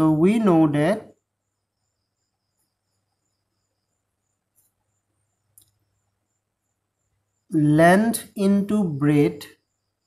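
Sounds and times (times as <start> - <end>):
crickets chirping: 0.0 - 10.0
low-pitched cricket trilling: 0.0 - 10.0
faint click: 5.5 - 5.8.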